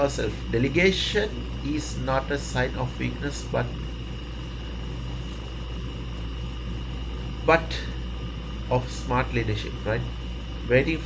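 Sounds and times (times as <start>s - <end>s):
faint high whine: 0.0s - 11.0s
low background rumble: 0.0s - 11.0s.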